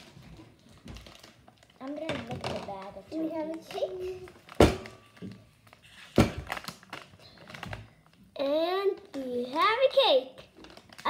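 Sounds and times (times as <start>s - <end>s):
objects tapping and clicking: 0.0s - 5.5s.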